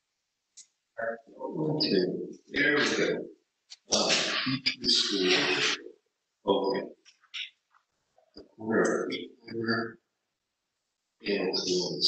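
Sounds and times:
person's wordless hesitation sound: 1.0 - 3.2, 3.8 - 5.9, 6.5 - 6.8, 8.4 - 9.8, 11.3 - 12.0.

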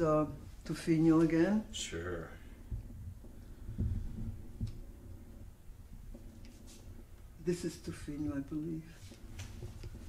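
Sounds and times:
soft low thumps: 2.6 - 6.3.

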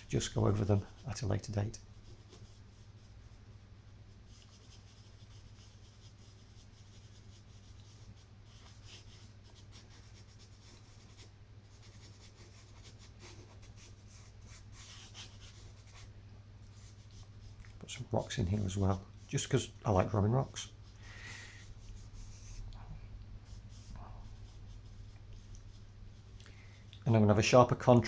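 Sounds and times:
steady low hum: 0.0 - 28.0
charcoal scratching on paper: 0.1 - 3.4, 4.1 - 16.1, 16.7 - 17.6, 18.3 - 22.7, 23.4 - 26.3.

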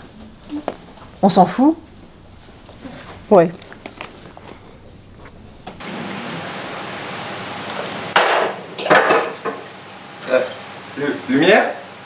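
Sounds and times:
dishes clattering: 8.2 - 9.8.

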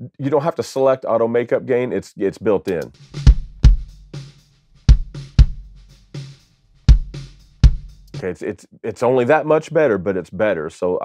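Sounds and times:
snare and cymbal hits: 2.7 - 8.3
kick drum hits: 3.2 - 4.1, 4.9 - 5.9, 6.9 - 8.1.

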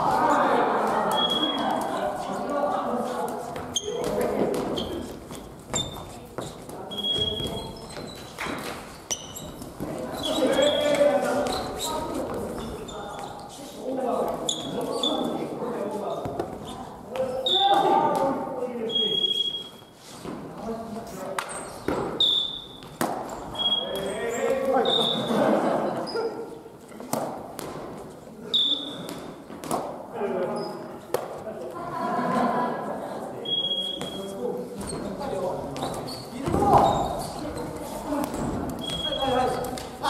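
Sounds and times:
players' voices echoing: 0.0 - 40.0
sneaker squeaks on wooden floor: 1.1 - 2.0, 3.5 - 13.6, 14.3 - 15.4, 16.1 - 17.9, 18.8 - 20.4, 21.5 - 25.3, 28.4 - 29.6, 30.5 - 31.0, 33.4 - 39.8.

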